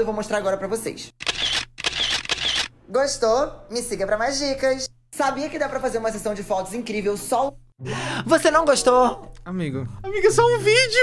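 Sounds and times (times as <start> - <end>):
camera shutter clicks: 1.2 - 2.7.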